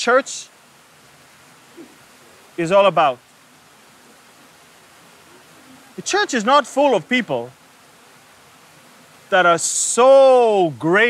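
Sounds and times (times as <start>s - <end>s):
faint outdoor background hiss: 0.0s - 11.0s
man speaking: 2.6s - 3.2s, 6.0s - 7.6s, 9.3s - 11.0s.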